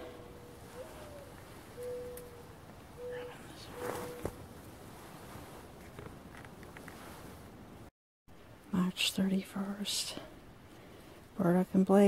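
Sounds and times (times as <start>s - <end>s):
dove cooing: 0.0s - 4.4s
faint footsteps in snow: 3.7s - 7.5s.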